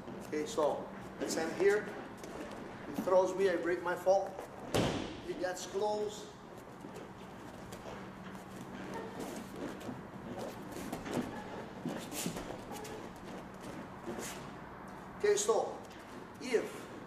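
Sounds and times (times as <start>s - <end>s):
bare feet scuffing on foam mats: 6.5s - 15.0s.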